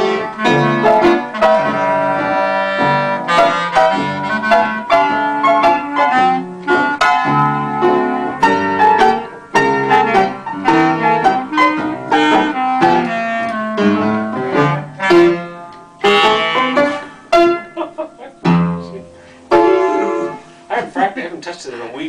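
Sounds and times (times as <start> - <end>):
clarinet playing: 0.0 - 20.6
piano chords: 0.0 - 22.0.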